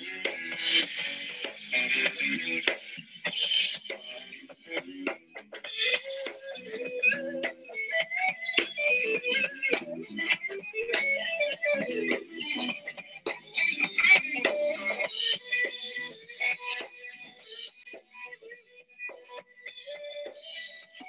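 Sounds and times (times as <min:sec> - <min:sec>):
electric guitar: 0:00.0 - 0:17.2.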